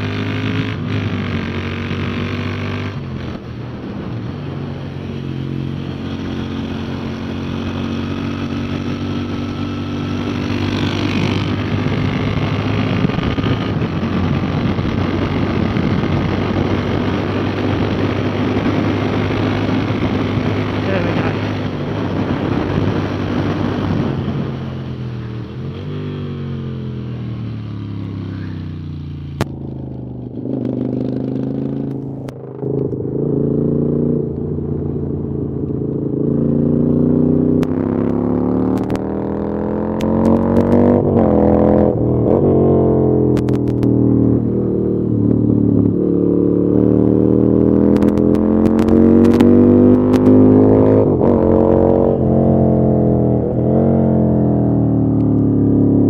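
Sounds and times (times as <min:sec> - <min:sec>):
motorcycle engine revving: 0:00.0 - 0:56.0
wind noise: 0:00.0 - 0:56.0.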